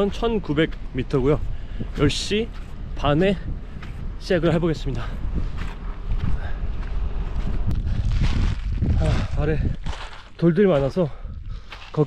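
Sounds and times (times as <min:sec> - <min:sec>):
footsteps crunching on gravel: 0:00.0 - 0:12.0
wind rumbling on microphone: 0:00.0 - 0:12.0
man speaking: 0:04.2 - 0:05.2, 0:09.0 - 0:09.7, 0:10.4 - 0:11.2.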